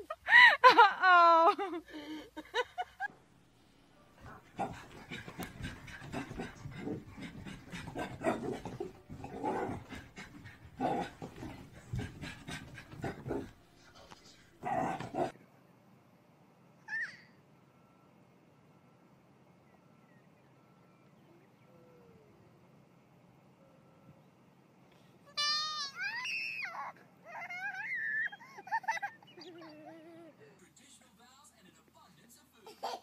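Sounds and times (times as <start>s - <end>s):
small dog panting and scuffling: 4.2s - 14.2s
dog yelping: 25.4s - 30.2s.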